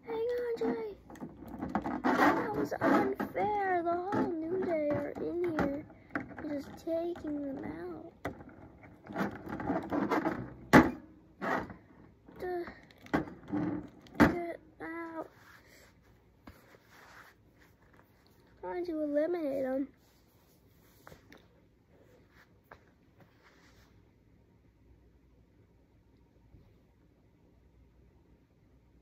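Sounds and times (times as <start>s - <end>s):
child making wordless sounds: 0.0s - 1.0s, 2.1s - 8.2s, 12.4s - 12.9s, 14.2s - 15.4s, 18.6s - 19.9s
plastic toy figures knocking: 1.1s - 11.8s.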